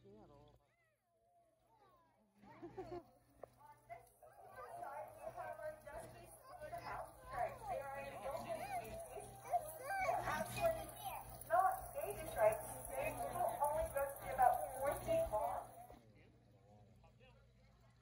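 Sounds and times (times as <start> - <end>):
indistinct voices: 3.5 - 16.0.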